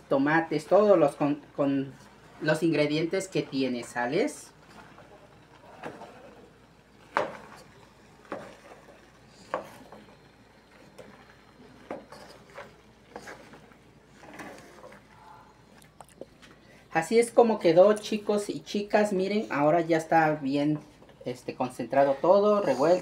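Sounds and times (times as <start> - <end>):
wooden spatula scraping a pan: 0.2 - 15.4, 21.8 - 23.0.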